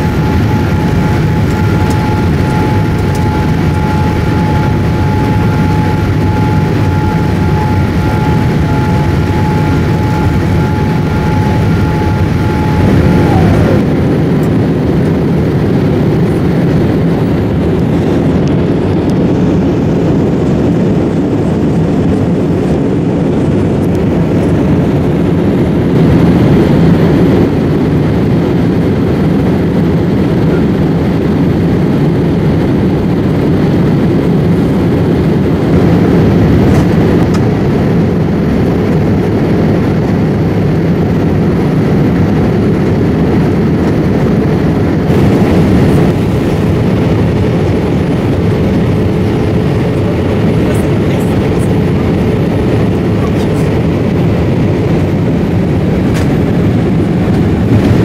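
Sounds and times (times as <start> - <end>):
airplane cabin rumble: 0.0 - 58.0.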